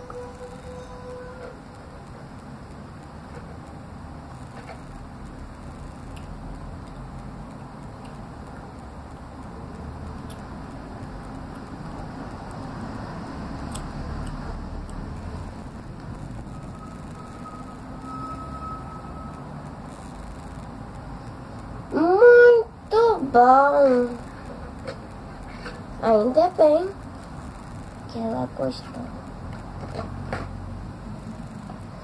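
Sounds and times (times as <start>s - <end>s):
low background rumble: 0.0s - 29.8s
faint thin tone: 16.4s - 20.1s.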